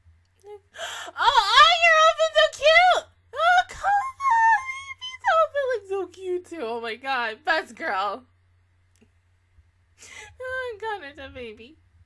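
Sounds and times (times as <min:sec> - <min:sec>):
woman gasping: 0:00.7 - 0:01.2, 0:10.0 - 0:10.4.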